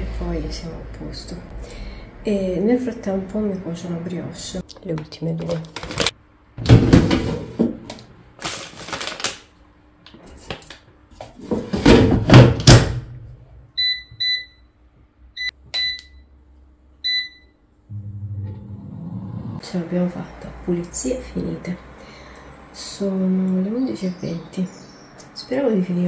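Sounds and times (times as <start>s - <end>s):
plastic bag rustling: 5.4s - 6.2s, 8.4s - 9.5s.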